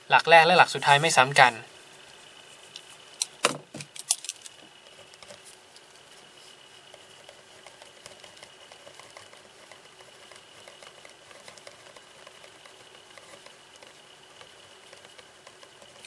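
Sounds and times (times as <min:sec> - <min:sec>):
pen writing on paper: 0:06.9 - 0:16.0.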